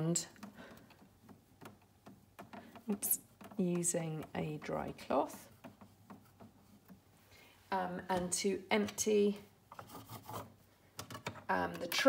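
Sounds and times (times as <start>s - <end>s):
cloth rubbing on metal: 2.9s - 7.3s, 9.7s - 10.7s.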